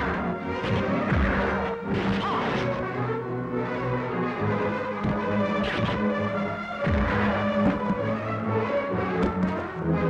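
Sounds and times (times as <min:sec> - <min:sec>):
dramatic background music: 0:00.0 - 0:10.0
punch and whack impacts: 0:00.6 - 0:02.5, 0:06.8 - 0:08.0.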